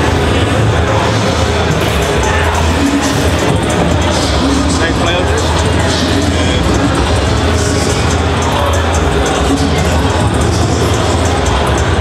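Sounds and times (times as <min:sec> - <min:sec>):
music with heavy bass: 0:00.0 - 0:12.0.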